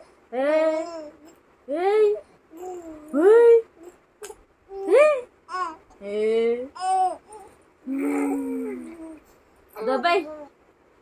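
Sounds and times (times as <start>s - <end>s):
baby cooing: 0.5s - 1.4s, 2.5s - 3.2s, 3.8s - 6.0s, 6.7s - 9.2s.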